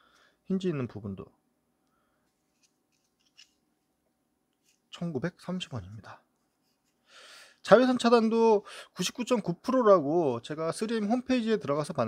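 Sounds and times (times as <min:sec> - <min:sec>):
safety glasses folding clicks: 0:02.5 - 0:03.6.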